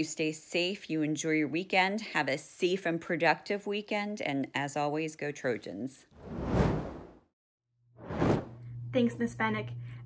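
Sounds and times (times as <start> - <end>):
whoosh sound effect: 6.2 - 7.2, 8.0 - 8.5.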